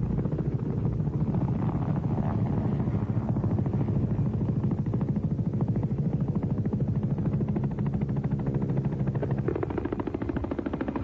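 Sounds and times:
helicopter engine drone: 0.0s - 11.0s
helicopter rotor chopping: 0.0s - 11.0s.

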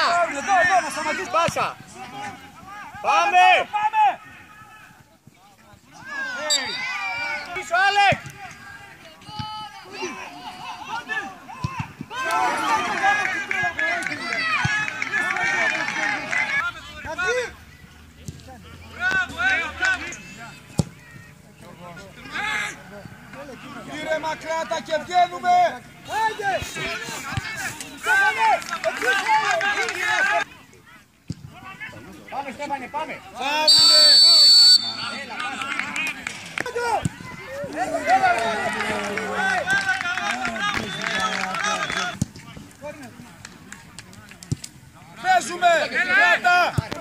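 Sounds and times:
people shouting: 6.0s - 16.6s.

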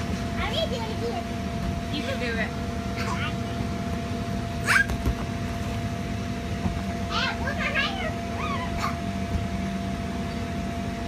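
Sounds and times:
air blower humming: 0.0s - 11.0s.

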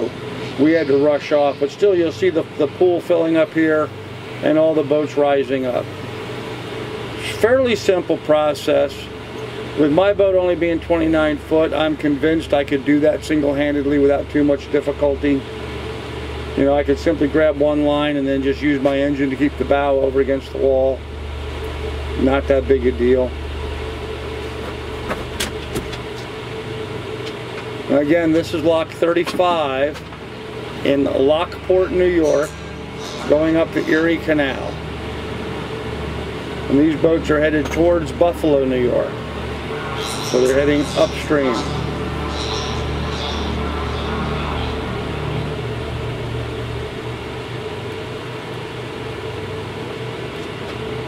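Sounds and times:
engine rumble with hum: 0.0s - 51.0s
thin even tone: 31.0s - 34.8s, 38.9s - 46.9s.

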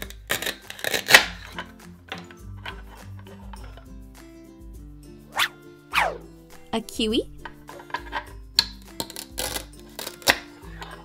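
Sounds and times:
velcro tearing apart: 0.0s - 1.4s, 9.0s - 10.4s
light background music: 0.0s - 11.0s.

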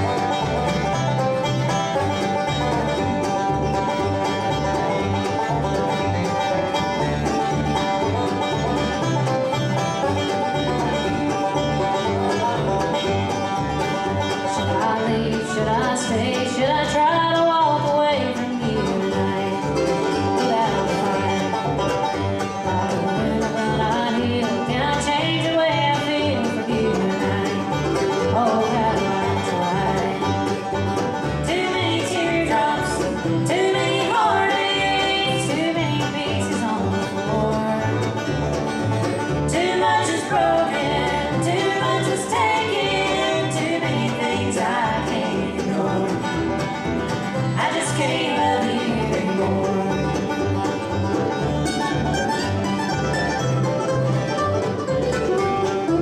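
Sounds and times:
acoustic guitars: 0.0s - 56.0s
banjo: 0.0s - 56.0s
mandolin: 0.0s - 56.0s
upright bass keeping a beat: 0.0s - 56.0s.

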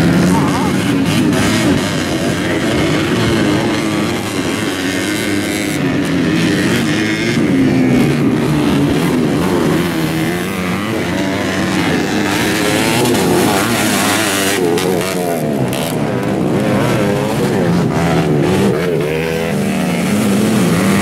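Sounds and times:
dirt bike engines revving: 0.0s - 21.0s.

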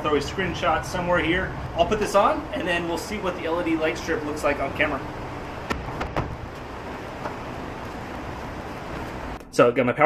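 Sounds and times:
background room noise: 0.0s - 10.0s.

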